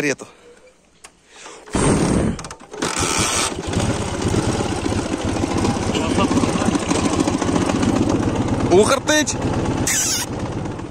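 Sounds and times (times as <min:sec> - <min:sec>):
motorcycle engine starting and running: 0:01.4 - 0:10.9.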